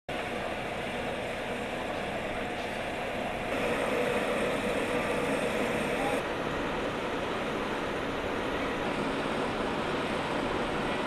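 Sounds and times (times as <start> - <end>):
heavy machinery engines running: 0.1 - 11.0.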